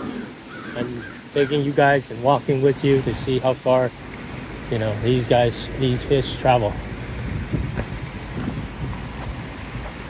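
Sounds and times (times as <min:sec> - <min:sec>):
river water rushing: 0:00.0 - 0:10.0
wind rumbling on microphone: 0:02.9 - 0:10.0
footsteps on loose stones: 0:07.1 - 0:10.0.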